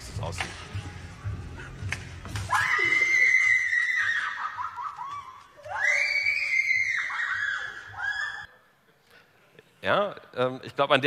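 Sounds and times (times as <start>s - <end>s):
woman screaming: 2.5s - 8.5s.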